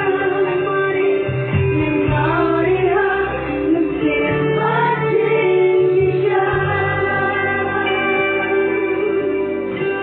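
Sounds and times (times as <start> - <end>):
acoustic guitar and band: 0.0 - 10.0
women singing gospel song: 0.0 - 10.0.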